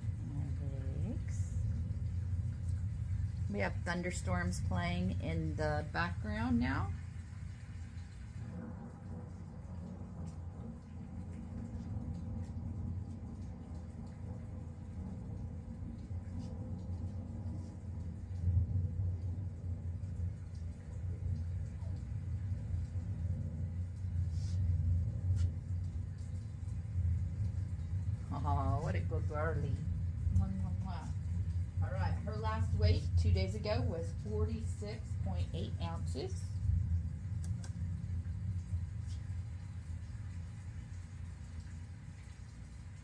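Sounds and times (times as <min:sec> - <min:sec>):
low rumble of thunder: 0:00.0 - 0:43.0.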